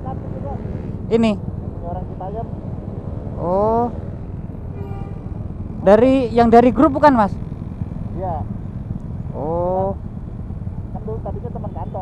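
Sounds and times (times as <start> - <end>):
man speaking: 0.0 - 2.5, 8.1 - 8.5, 10.9 - 12.0
motorcycle engines idling: 0.0 - 12.0.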